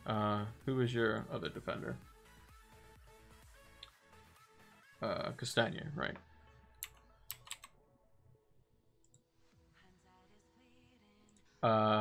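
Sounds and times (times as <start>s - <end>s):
computer mouse clicks: 6.8s - 7.7s.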